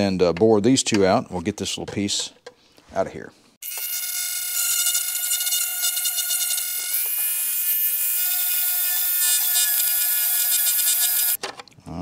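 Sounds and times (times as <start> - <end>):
rotary tool whining: 3.6 - 11.4.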